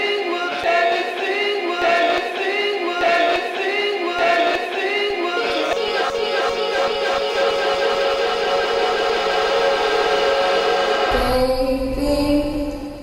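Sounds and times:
sustained synthesizer chord: 0:05.4 - 0:11.4.

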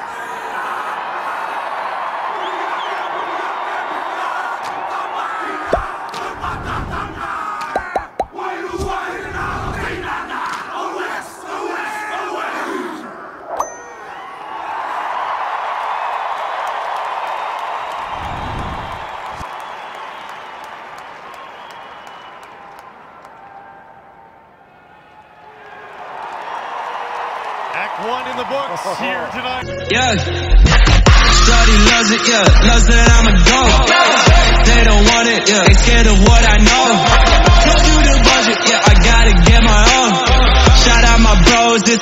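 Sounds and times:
team chanting and shouting: 0:00.0 - 0:13.5, 0:30.8 - 0:42.0
stadium crowd: 0:00.0 - 0:42.0.

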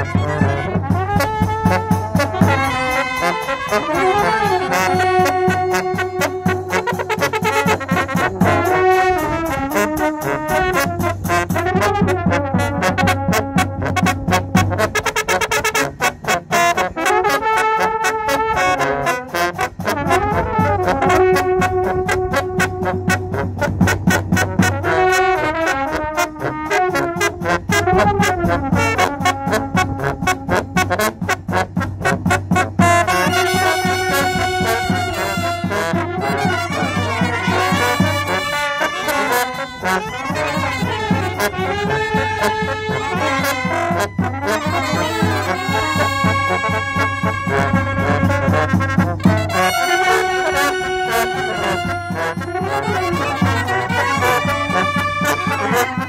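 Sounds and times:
brass band playing: 0:00.0 - 0:56.0
trumpet melody: 0:00.0 - 0:56.0.

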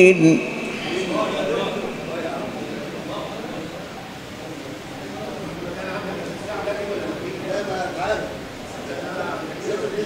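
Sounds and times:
men's voices murmuring: 0:00.0 - 0:10.0.

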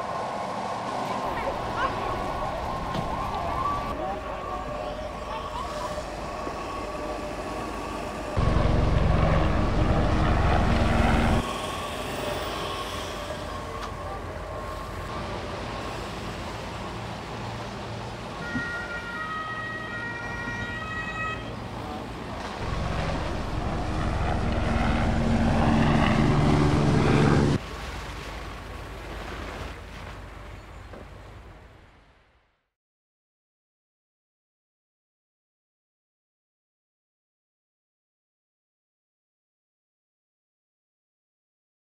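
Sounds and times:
vehicle noise: 0:00.0 - 0:27.9
emergency vehicle siren: 0:02.0 - 0:11.5, 0:18.4 - 0:27.6
heavy low rumble: 0:08.3 - 0:11.5, 0:22.5 - 0:27.6.

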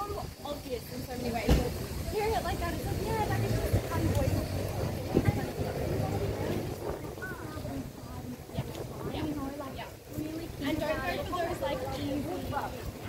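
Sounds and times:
passers-by talking: 0:00.0 - 0:13.0.

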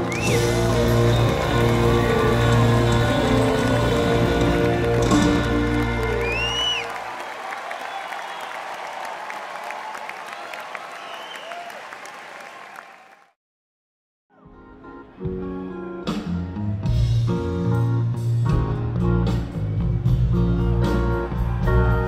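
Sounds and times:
shrill whistles: 0:00.0 - 0:01.3, 0:06.0 - 0:08.8, 0:10.2 - 0:11.9
live rock band playing: 0:00.0 - 0:06.6, 0:14.6 - 0:22.0
crowd applause and cheering: 0:00.0 - 0:13.4, 0:19.2 - 0:22.0.

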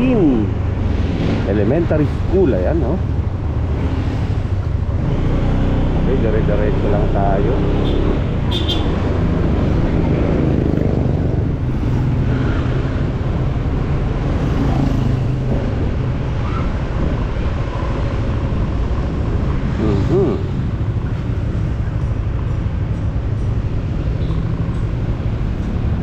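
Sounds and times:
road and traffic noise: 0:00.0 - 0:26.0.

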